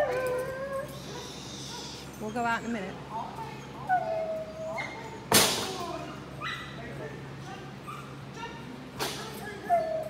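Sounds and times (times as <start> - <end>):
dog whining: 0.0 - 2.7, 3.3 - 5.3, 9.5 - 10.0.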